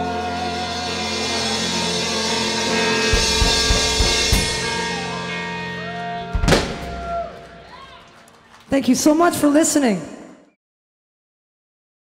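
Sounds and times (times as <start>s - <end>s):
rock band holding final chord: 0.0s - 7.8s
drum fill: 3.1s - 5.2s, 6.3s - 7.4s.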